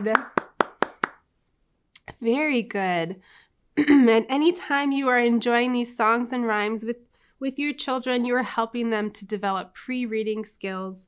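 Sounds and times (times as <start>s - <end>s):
person clapping hands: 0.0s - 1.2s.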